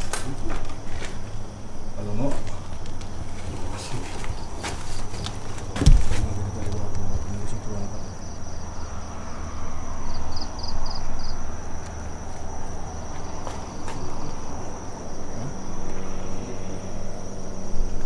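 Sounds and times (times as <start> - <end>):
insects trilling: 0.0 - 18.0
quick insect chirps: 0.0 - 18.0.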